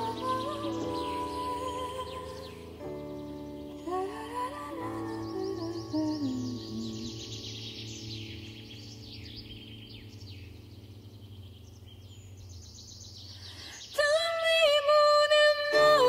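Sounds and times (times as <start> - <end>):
birds singing: 0.0 - 16.0.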